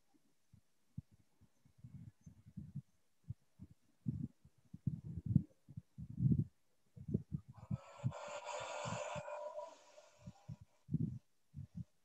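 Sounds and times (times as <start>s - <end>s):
hissing breath: 7.6s - 10.7s
breath puffs against microphone: 7.6s - 11.9s.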